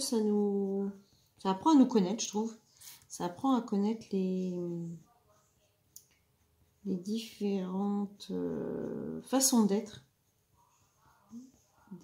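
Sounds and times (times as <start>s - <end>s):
woman talking: 0.0s - 5.1s, 6.8s - 10.1s.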